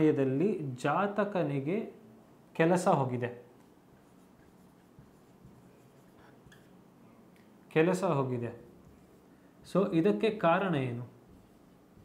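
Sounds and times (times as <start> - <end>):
marker pen scratching on whiteboard: 3.6 - 6.8, 8.7 - 9.8, 11.2 - 12.0.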